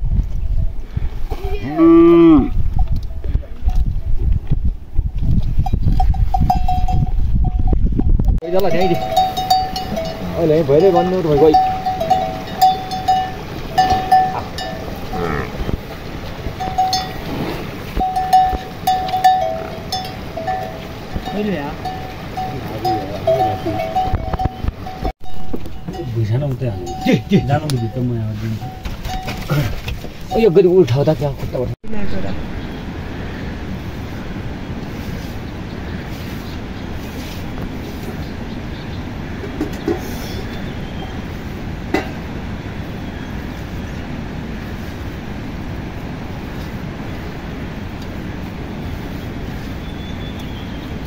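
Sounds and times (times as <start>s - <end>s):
metal neck bell clanking: 5.6s - 8.1s, 8.7s - 15.2s, 16.6s - 17.3s, 18.0s - 31.0s.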